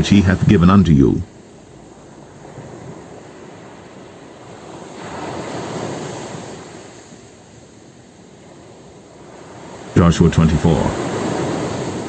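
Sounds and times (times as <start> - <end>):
ocean surf washing ashore: 0.0 - 12.0.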